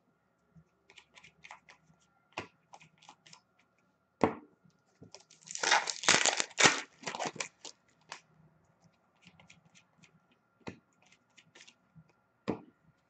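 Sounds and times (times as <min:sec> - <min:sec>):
foil wrapper tearing and crinkling: 0:05.2 - 0:08.2.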